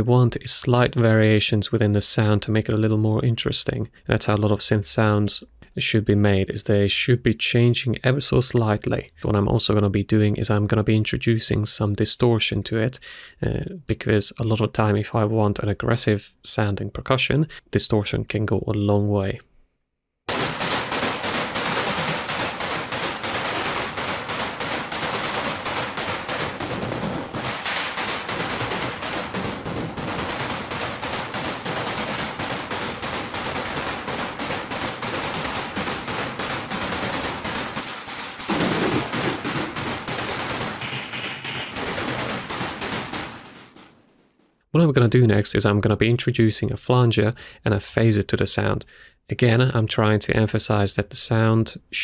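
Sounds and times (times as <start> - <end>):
hissy synthesized noise percussion: 20.3 - 44.0.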